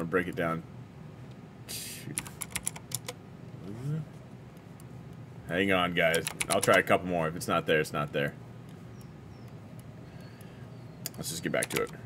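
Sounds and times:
keyboard typing: 0:02.2 - 0:03.2, 0:06.1 - 0:06.9, 0:11.1 - 0:12.0.

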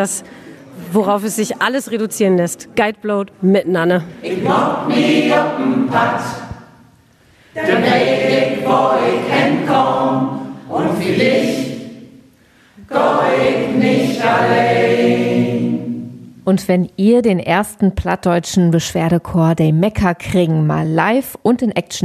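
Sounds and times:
mixed choir singing: 0:04.1 - 0:06.8, 0:07.5 - 0:12.2, 0:12.8 - 0:16.3.

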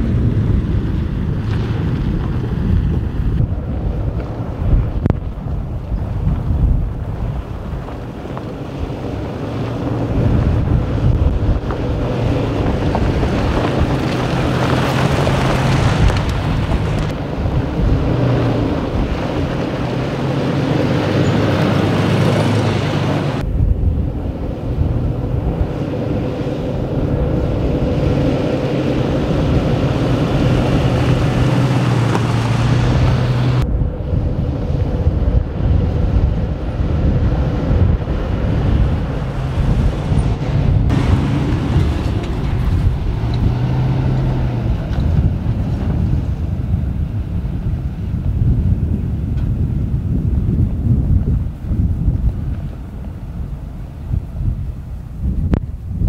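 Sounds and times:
tyres on sand and gravel: 0:00.0 - 0:55.8
vehicle engine droning: 0:00.0 - 0:56.0
wind buffeting microphone: 0:00.0 - 0:56.0.

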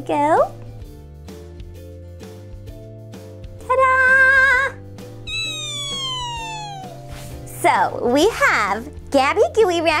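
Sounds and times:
background music: 0:00.0 - 0:10.0
high tone gliding downward: 0:05.3 - 0:07.1.

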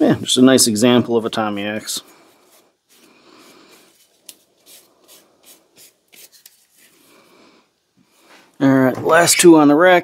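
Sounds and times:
gloved hands rubbing metal: 0:01.6 - 0:07.2.

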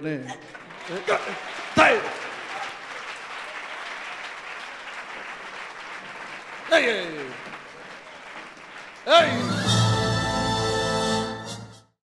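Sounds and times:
crowd applauding: 0:00.0 - 0:10.5
man shouting: 0:01.8 - 0:02.2.

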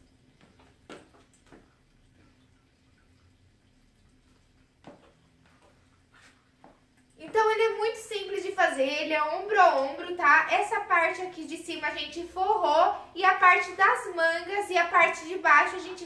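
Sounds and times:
faint steady hum: 0:00.0 - 0:16.0
high heels tapping on tile: 0:00.4 - 0:01.7
woman talking: 0:07.2 - 0:16.0.

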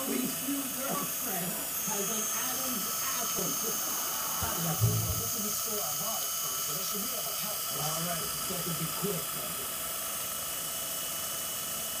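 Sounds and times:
small electric motor whirring: 0:00.0 - 0:12.0.

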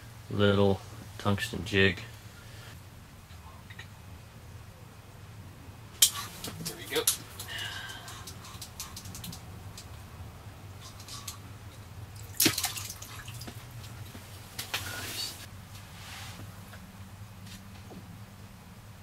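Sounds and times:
water splashing and dripping: 0:06.0 - 0:10.1, 0:10.7 - 0:15.0.

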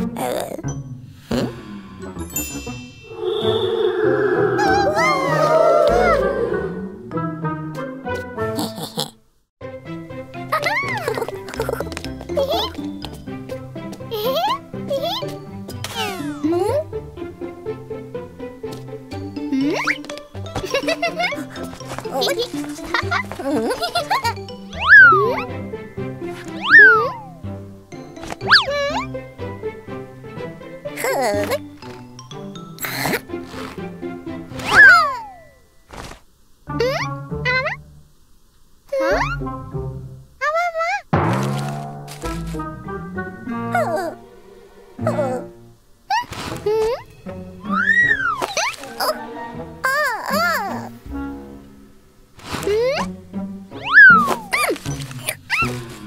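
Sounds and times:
rising and falling pitch glide: 0:03.0 - 0:07.0
bouncy children's music: 0:09.6 - 0:35.6, 0:41.9 - 0:51.6, 0:52.7 - 0:56.0
cartoon boing sound effects: 0:24.8 - 0:25.4, 0:26.6 - 0:27.3
quick falling chirps: 0:26.5 - 0:27.3, 0:34.6 - 0:36.2, 0:47.6 - 0:49.1, 0:53.8 - 0:55.8.

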